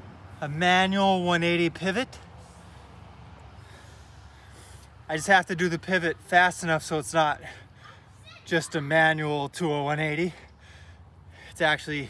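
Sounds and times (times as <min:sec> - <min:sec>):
man breathing heavily: 0:02.2 - 0:05.1, 0:07.4 - 0:08.2, 0:10.2 - 0:11.7.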